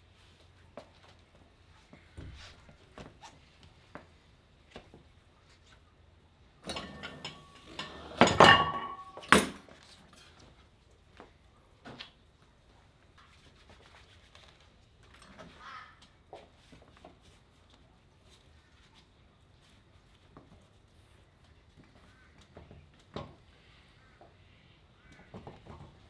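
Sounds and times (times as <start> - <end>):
metal clanking and clinking: 6.6 - 9.7.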